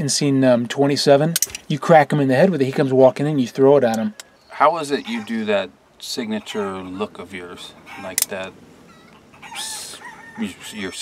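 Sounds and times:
man speaking: 0:00.0 - 0:08.6, 0:09.4 - 0:11.0
chickens clucking: 0:03.9 - 0:11.0.

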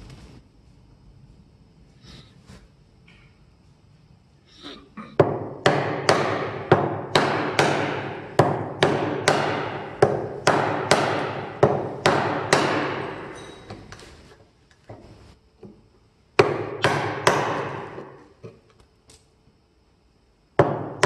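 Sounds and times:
hammer striking chisel handle: 0:05.2 - 0:13.7, 0:16.4 - 0:18.1.

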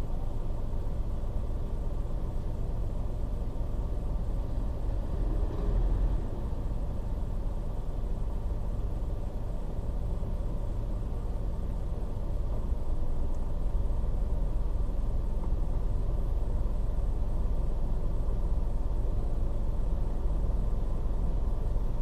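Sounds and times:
car engine and tyres rumbling: 0:00.0 - 0:22.0
minibus passing: 0:03.8 - 0:08.1.

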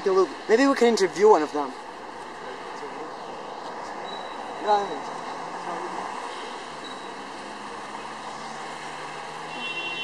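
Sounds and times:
city traffic: 0:00.0 - 0:10.0.

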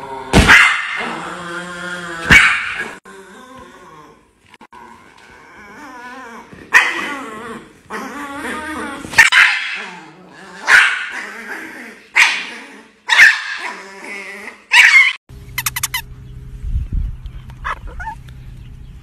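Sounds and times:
dog barking: 0:00.4 - 0:01.0, 0:02.3 - 0:02.9, 0:09.2 - 0:10.0, 0:10.6 - 0:11.2, 0:12.2 - 0:12.5, 0:13.1 - 0:13.7, 0:14.7 - 0:15.2
dog growling: 0:01.0 - 0:09.2, 0:09.8 - 0:13.0, 0:13.6 - 0:14.7.

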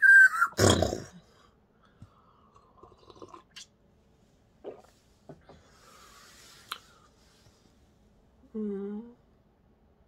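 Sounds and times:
person whistling rising tone: 0:00.0 - 0:00.6.

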